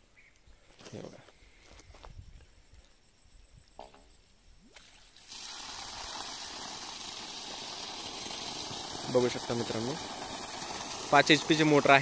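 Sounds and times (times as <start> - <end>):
water gushing from pipe: 5.2 - 12.0.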